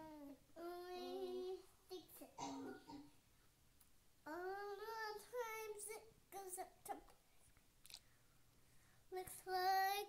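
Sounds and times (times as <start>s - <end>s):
girl singing: 0.0s - 2.5s, 4.2s - 7.2s, 9.1s - 10.0s.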